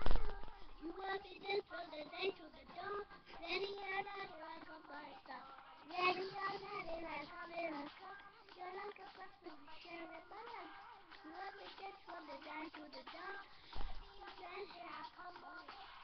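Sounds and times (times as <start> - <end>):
girl singing pop song: 0.0 - 16.0.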